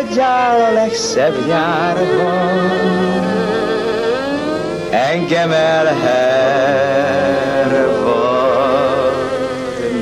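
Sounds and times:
man singing: 0.0 - 10.0
violin: 0.0 - 10.0.

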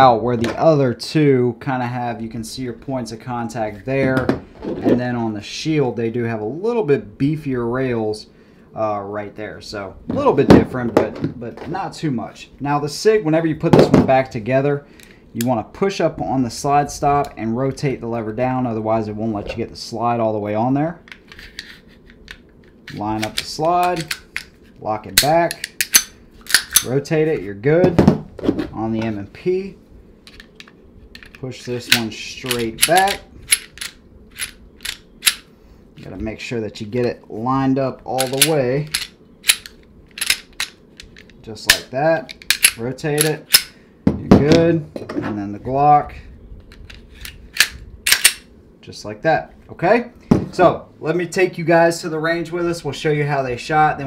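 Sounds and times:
pistol slide clicks and scrapes: 21.1 - 26.9, 30.3 - 35.5, 38.2 - 41.4, 42.3 - 43.7, 46.7 - 48.4.

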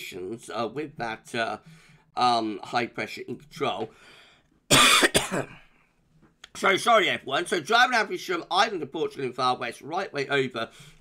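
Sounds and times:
man coughing: 4.7 - 5.7.

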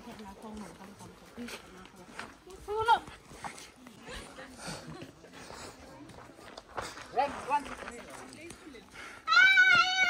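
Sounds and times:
voices outdoors: 0.0 - 10.0.

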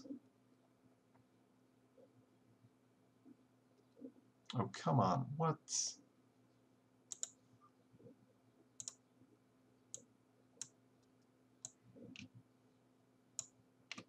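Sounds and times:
faint low hum: 0.0 - 14.0
computer mouse clicks: 7.1 - 7.4, 8.8 - 9.0, 9.9 - 12.4, 13.4 - 14.0.

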